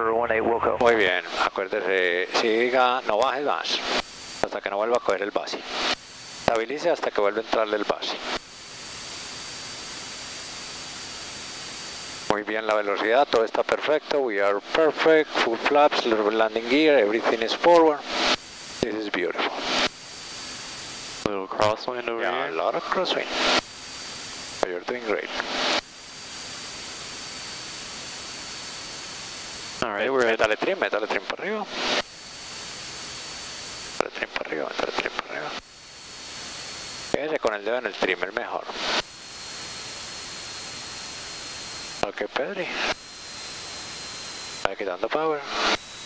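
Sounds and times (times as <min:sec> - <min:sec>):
faint high whine: 0:00.0 - 0:46.0
intercom radio hiss: 0:00.1 - 0:08.4, 0:34.0 - 0:35.6, 0:41.4 - 0:46.0
static hiss: 0:25.3 - 0:46.0.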